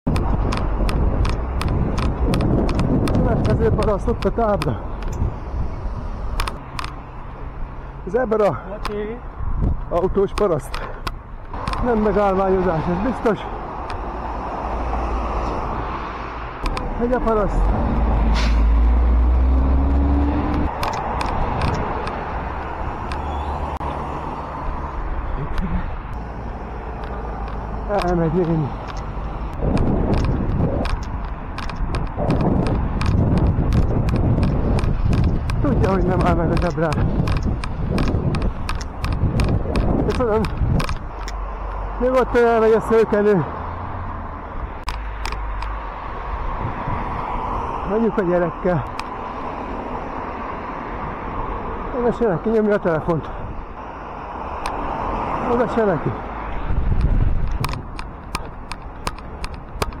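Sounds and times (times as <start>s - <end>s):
wind and road noise rumble: 0.0s - 60.0s
sharp clicks and rattles: 0.1s - 5.4s, 6.2s - 7.1s, 9.6s - 14.1s, 16.6s - 17.8s, 19.8s - 23.3s, 25.4s - 43.4s, 44.7s - 45.8s, 55.5s - 60.0s
regular ticking: 25.5s - 43.4s, 56.9s - 60.0s.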